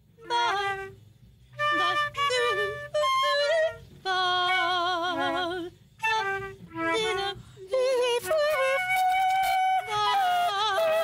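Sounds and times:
flute playing: 0.0 - 11.0
woman yodel-like singing: 1.6 - 11.0.

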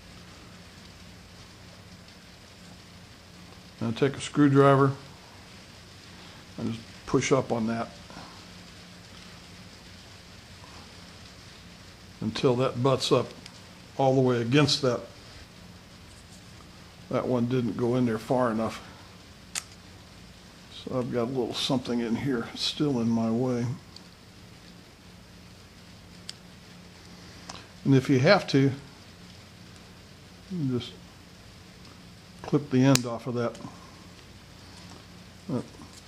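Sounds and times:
faint steady hiss: 0.0 - 36.0
low mains hum: 0.0 - 36.0.

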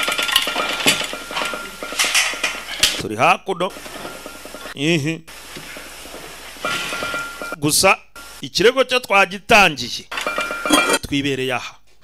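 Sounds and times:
dishes and cutlery clinking: 0.0 - 3.0, 6.6 - 7.6, 10.1 - 11.0.

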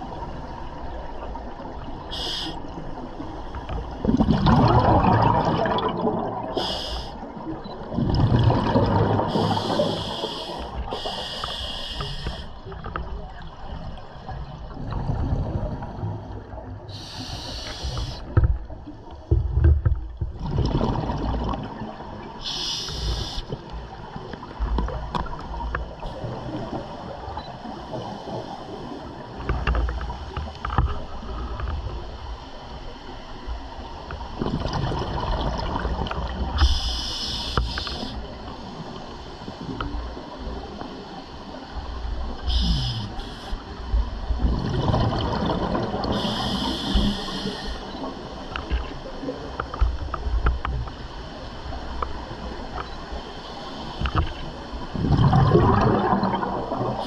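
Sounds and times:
hissing regulator inhale: 2.1 - 2.6, 6.6 - 7.2, 9.3 - 12.6, 16.9 - 18.3, 22.4 - 23.5, 36.6 - 38.2, 42.4 - 43.7, 46.1 - 48.0
gurgling exhaled bubbles: 3.7 - 11.2, 13.7 - 18.2, 19.4 - 25.2, 34.2 - 36.9, 44.2 - 48.1, 54.0 - 57.0.

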